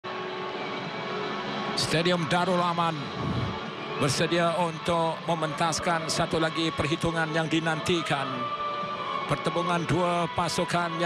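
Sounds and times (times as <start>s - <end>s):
stadium crowd noise: 0.1s - 11.0s
male commentator speaking: 1.8s - 8.5s, 9.3s - 11.0s.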